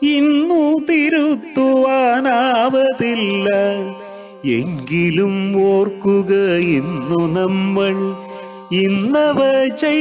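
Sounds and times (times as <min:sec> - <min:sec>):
person singing slowly: 0:00.0 - 0:10.0.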